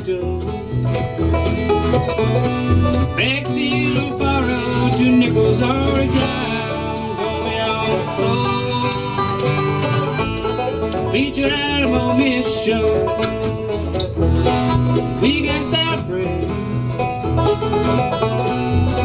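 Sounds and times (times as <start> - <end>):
acoustic guitar: 0.0 - 19.0
rolling banjo: 0.0 - 19.0
strummed mandolin: 0.0 - 19.0
harmonica wailing: 0.4 - 11.4, 17.3 - 19.0.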